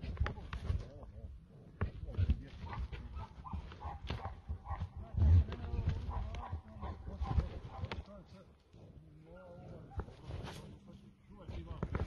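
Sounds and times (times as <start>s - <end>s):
horns and hooves knocking: 1.7s - 8.2s.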